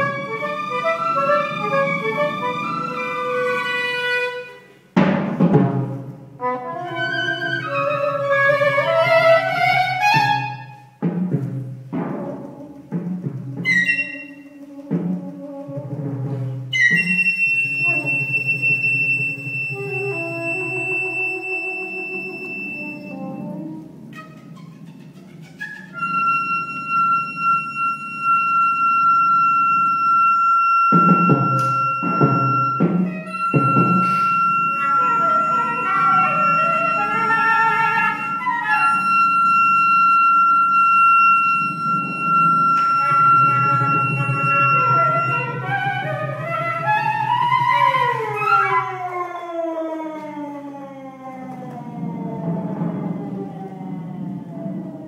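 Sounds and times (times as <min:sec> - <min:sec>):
high held woodwind note: 0:13.6 - 0:15.1, 0:16.7 - 0:24.8, 0:25.6 - 0:49.2
lower sustained notes: 0:25.9 - 0:49.2, 0:51.1 - 0:55.0
low percussion rumble: 0:30.9 - 0:49.1, 0:51.3 - 0:55.0.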